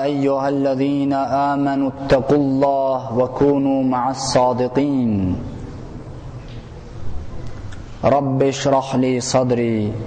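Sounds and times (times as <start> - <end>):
man chanting melodically: 0.0 - 5.5, 8.0 - 10.0.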